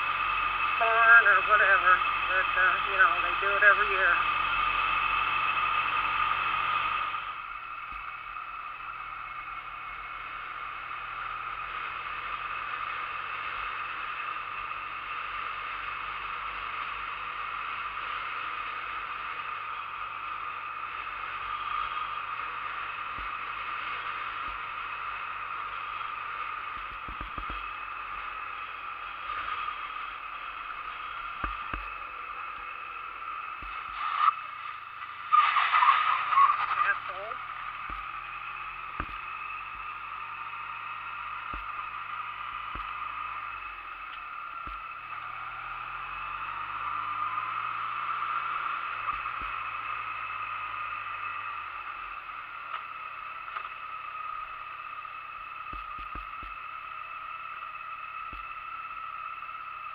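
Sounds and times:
motorcycle engine drone: 0:00.0 - 0:59.9
faint road bump knocks: 0:26.8 - 0:27.7, 0:39.0 - 0:39.3, 0:42.7 - 0:43.0, 0:49.1 - 0:49.6, 0:55.7 - 0:56.6.

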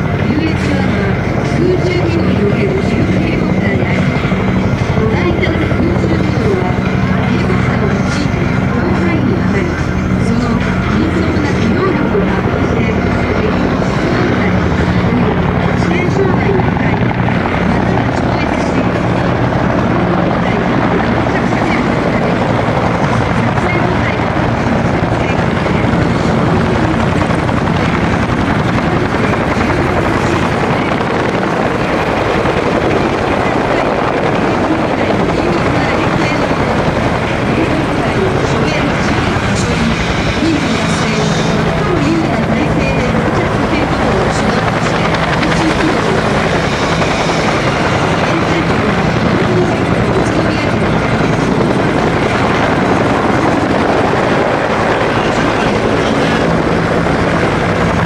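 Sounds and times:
helicopters flying low: 0:00.0 - 0:58.0.

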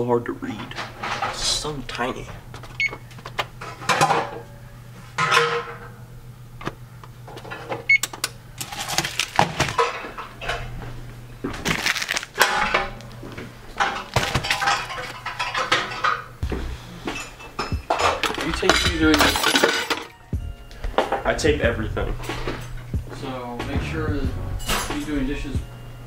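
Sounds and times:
rustling and clattering: 0:00.5 - 0:01.6, 0:08.6 - 0:16.4
oven keypad beep: 0:02.8 - 0:03.1, 0:07.8 - 0:08.2
steady low hum: 0:12.4 - 0:19.4, 0:20.2 - 0:26.0.

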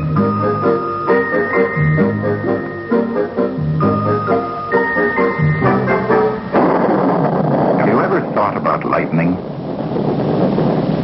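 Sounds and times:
title music with held chords: 0:00.0 - 0:06.6
thunder crash with crackling hiss: 0:06.4 - 0:11.0.

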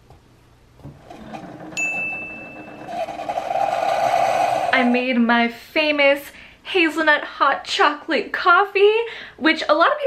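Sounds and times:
coffee maker pump humming: 0:00.8 - 0:05.1
high steady tone: 0:01.7 - 0:05.2.

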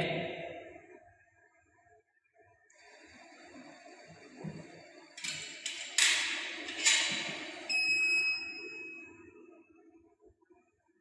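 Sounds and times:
analyzer electronic beep: 0:07.7 - 0:09.3.

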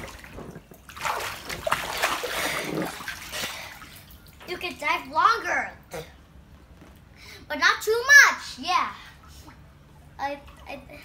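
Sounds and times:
water splashing: 0:00.0 - 0:04.4.

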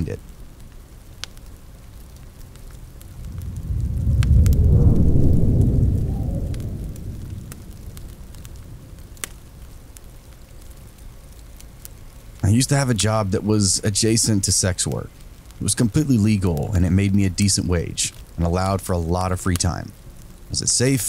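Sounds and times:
rain hissing: 0:00.0 - 0:21.0
wood fire crackling: 0:00.0 - 0:21.0
low rolling thunder: 0:02.8 - 0:09.7.

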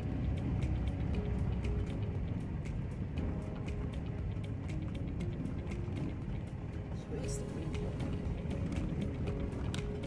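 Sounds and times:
tyres rumbling on gravel road: 0:00.0 - 0:10.0.

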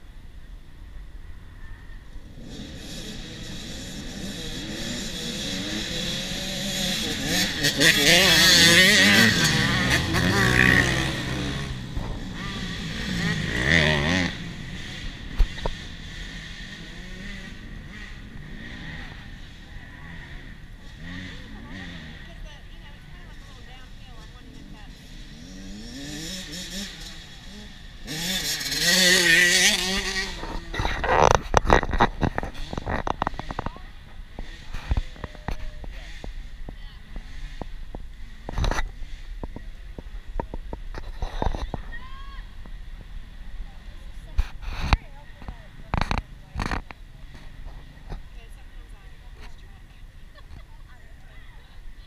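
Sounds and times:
dirt bike engines revving: 0:00.9 - 0:52.0.

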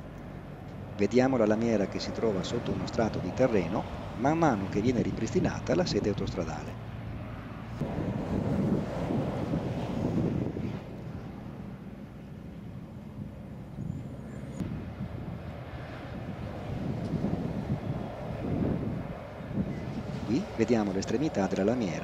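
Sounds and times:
distant engines hum: 0:00.0 - 0:22.0
wind buffeting microphone: 0:00.0 - 0:22.0.

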